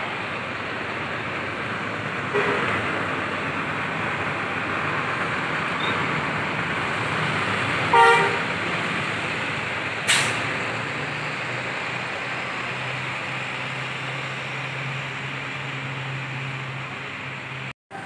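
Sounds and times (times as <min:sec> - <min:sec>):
bus engine humming: 0:00.0 - 0:18.0
sharp hiss: 0:10.1 - 0:10.4.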